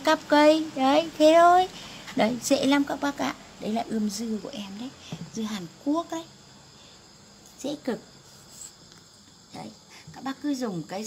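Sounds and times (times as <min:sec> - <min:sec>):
crickets trilling: 0:00.0 - 0:11.0.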